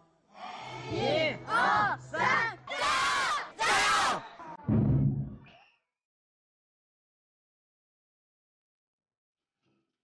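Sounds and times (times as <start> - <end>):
group shouting a cheer in unison: 0.4 - 4.5.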